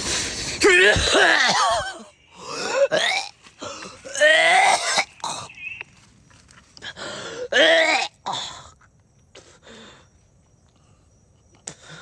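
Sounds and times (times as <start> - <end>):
person crying out and groaning: 0.6 - 3.0, 4.0 - 5.0.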